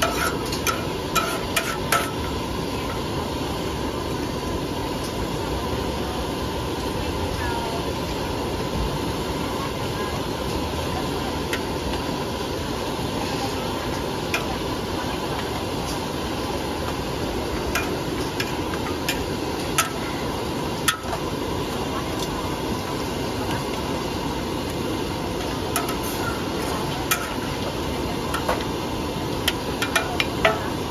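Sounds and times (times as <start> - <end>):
metal spatula scraping a wok: 0.0 - 2.4
noodles sizzling in a wok: 0.0 - 30.9.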